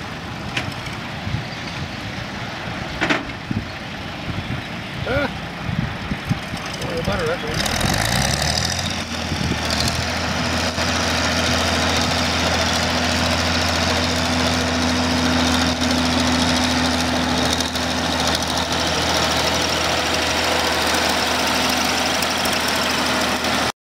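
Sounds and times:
tractor diesel engine running: 0:00.0 - 0:23.7.

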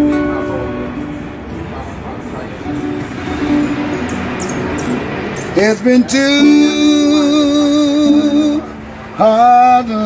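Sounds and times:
acoustic guitar picking: 0:00.0 - 0:10.0
person singing: 0:05.6 - 0:10.0.

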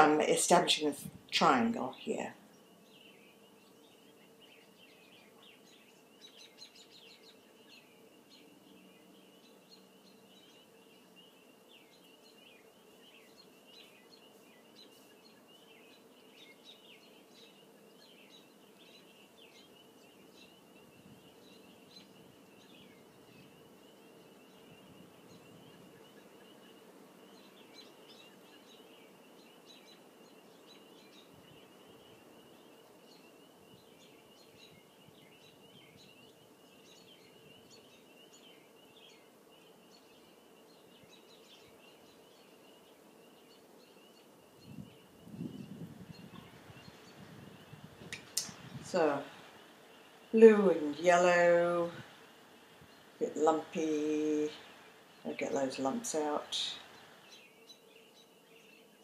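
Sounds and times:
birds chirping: 0:00.0 - 0:59.0.

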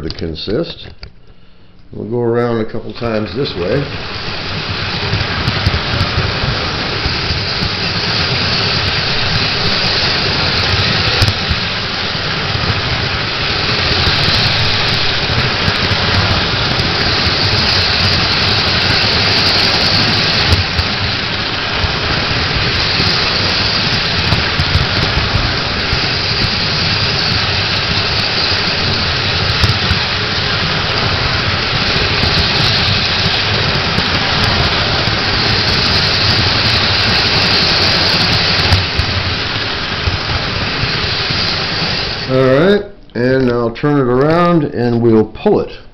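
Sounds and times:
model train rumbling on rails: 0:02.4 - 0:44.6
louder track clicks: 0:02.7 - 0:42.3.

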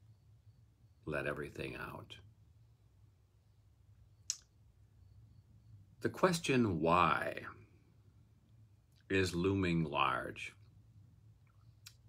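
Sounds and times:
faint low hum: 0:00.0 - 0:12.0
sharp click: 0:04.2 - 0:04.5.

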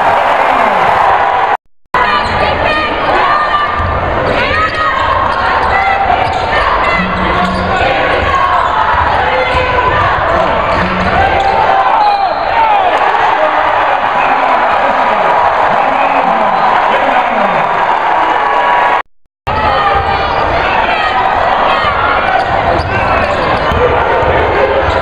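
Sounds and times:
crowd shouting and calling: 0:00.0 - 0:25.0.

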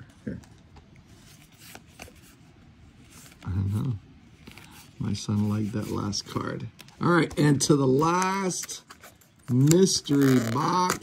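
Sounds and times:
paper cards rustling and flicking: 0:03.0 - 0:11.0.

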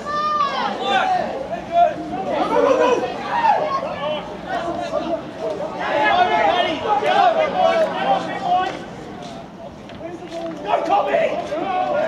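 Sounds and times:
people calling out: 0:00.0 - 0:08.8.

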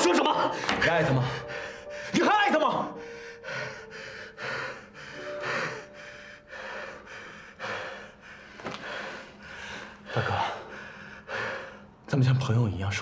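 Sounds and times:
person gasping breaths: 0:03.0 - 0:11.9.

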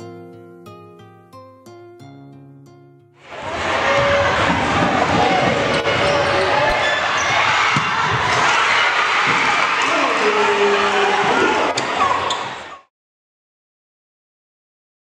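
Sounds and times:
voices shouting: 0:03.2 - 0:12.8
crowd noise: 0:03.2 - 0:12.9.

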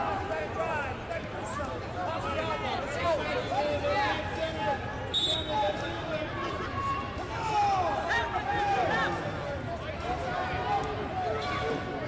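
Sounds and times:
referee's whistle blast: 0:05.1 - 0:05.8.

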